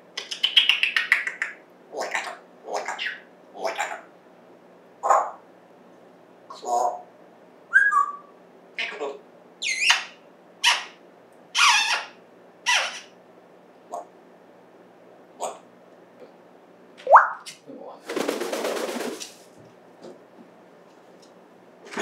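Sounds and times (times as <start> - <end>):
parrot calling: 0.2 - 4.1, 5.0 - 5.4, 7.7 - 13.2, 17.0 - 17.5.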